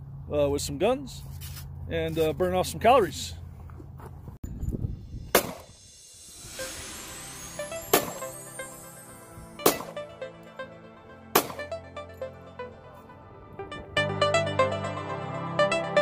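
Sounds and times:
electronic music: 0:05.1 - 0:16.0
handgun shots: 0:09.6 - 0:10.0, 0:11.4 - 0:11.7.

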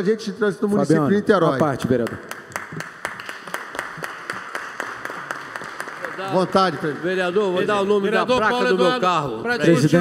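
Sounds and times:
people applauding: 0:01.7 - 0:08.2.

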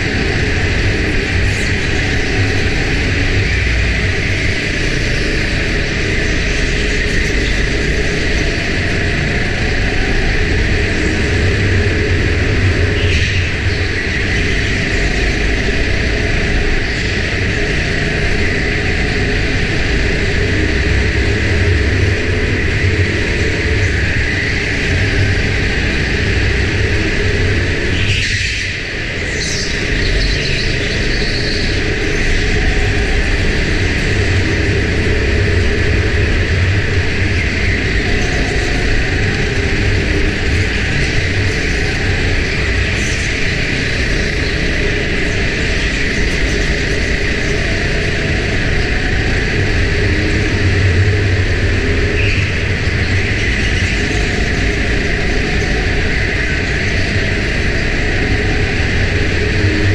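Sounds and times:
go-kart engine rumbling: 0:00.0 - 0:59.9.

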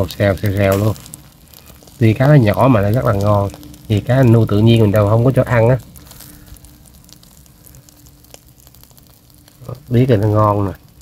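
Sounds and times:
fat popping: 0:00.0 - 0:11.0
fish sizzling on charcoal: 0:00.0 - 0:11.0.

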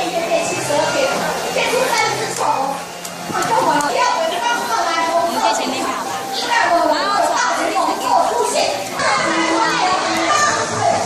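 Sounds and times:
children's high voices: 0:00.0 - 0:11.0
crowd voices chattering: 0:00.0 - 0:11.0.

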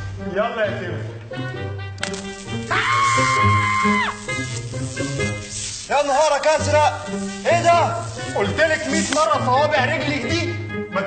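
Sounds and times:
woman screaming: 0:02.7 - 0:04.2.

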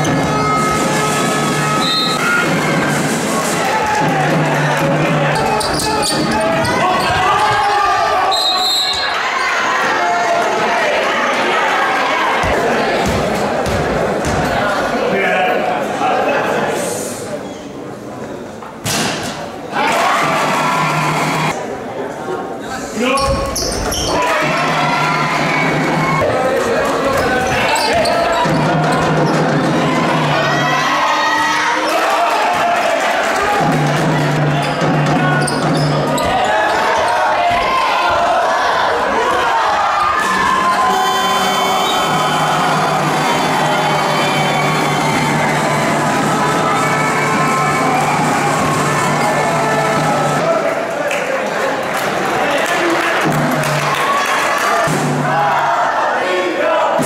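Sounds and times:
spectators voices and shouts: 0:01.7 - 0:57.0.

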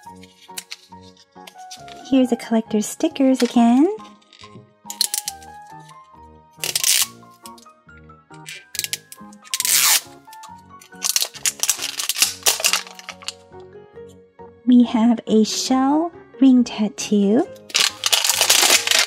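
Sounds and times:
background music: 0:00.0 - 0:19.0
wrapping tearing and crinkling: 0:03.4 - 0:05.8, 0:06.6 - 0:07.6, 0:08.5 - 0:13.4, 0:17.7 - 0:19.0.

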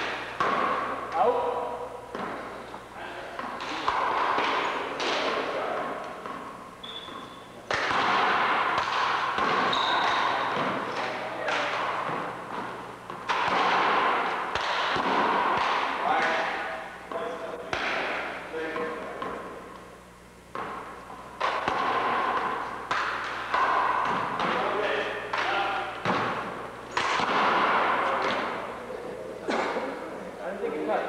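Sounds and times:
handball smacking wall and floor: 0:00.0 - 0:01.4, 0:02.1 - 0:19.6, 0:20.5 - 0:28.7.

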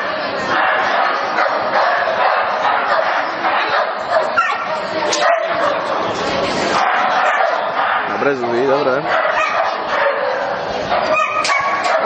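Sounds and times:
dogs barking and yipping: 0:00.0 - 0:12.0
people's voices: 0:00.0 - 0:12.0.

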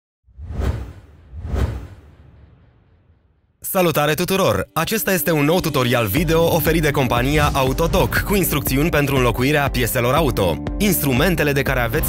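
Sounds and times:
whoosh sound effects: 0:00.3 - 0:03.5.

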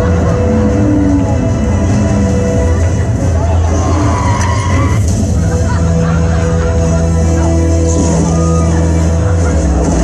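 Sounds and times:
music over sound system: 0:00.0 - 0:10.0.

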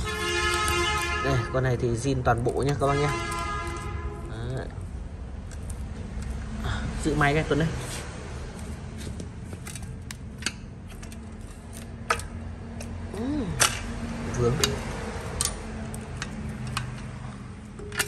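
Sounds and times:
metallic gear clicks and clunks: 0:09.2 - 0:18.0.

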